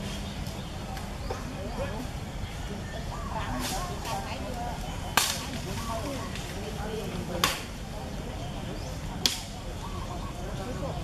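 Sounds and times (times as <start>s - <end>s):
sharp crack: 5.1s - 5.6s, 7.3s - 7.7s, 9.2s - 9.6s
faint chirp-like calls: 7.9s - 11.0s.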